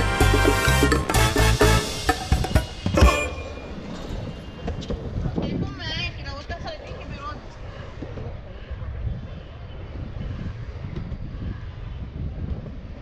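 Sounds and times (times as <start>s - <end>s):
wind buffeting microphone: 2.3s - 13.0s
skateboard wheels rolling on asphalt: 2.9s - 13.0s.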